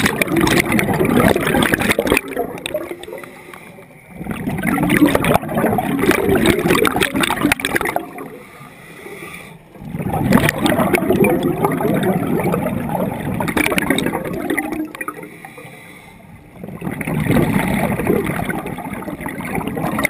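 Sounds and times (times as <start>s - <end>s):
diver's bubbles gurgling: 0.0s - 8.6s, 9.7s - 15.6s, 16.4s - 20.0s.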